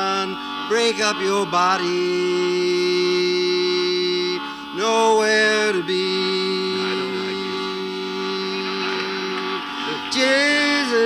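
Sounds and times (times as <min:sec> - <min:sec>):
chanted song: 0:00.0 - 0:11.0
harmonium reed drone: 0:00.0 - 0:11.0
man singing: 0:00.0 - 0:11.0.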